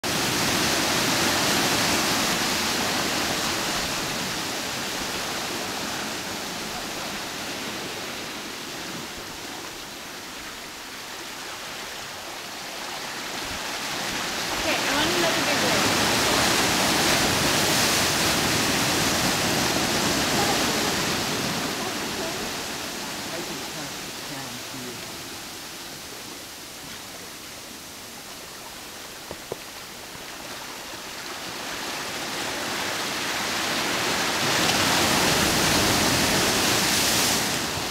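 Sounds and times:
sea waves surging into rocky gully: 0:00.0 - 0:37.9.

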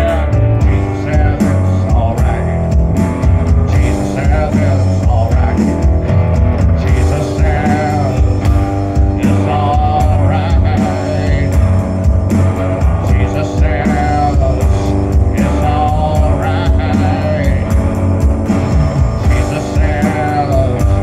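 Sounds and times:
drum kit steady beat: 0:00.0 - 0:21.0
electric guitar: 0:00.0 - 0:21.0
upright bass line: 0:00.0 - 0:21.0.

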